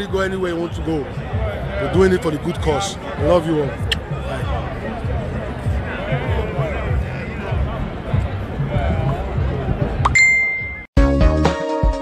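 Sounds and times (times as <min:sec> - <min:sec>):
street crowd voices: 0:00.0 - 0:10.9
bright bell-like ding: 0:10.1 - 0:10.9.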